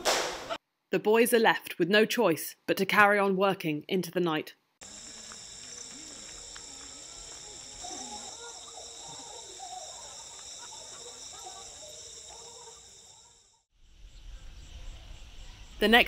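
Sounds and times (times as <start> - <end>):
wavering insect calls: 4.8 - 13.7
insect chorus trilling: 4.8 - 15.8.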